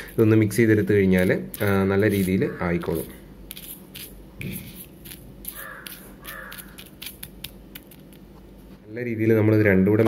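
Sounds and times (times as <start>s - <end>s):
metal spoon scraping on paper: 0.0s - 8.1s.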